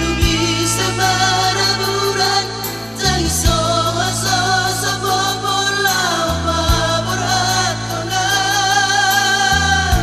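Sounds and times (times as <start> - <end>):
bass and keyboard accompaniment: 0.0 - 10.0
person singing pop song: 0.0 - 10.0.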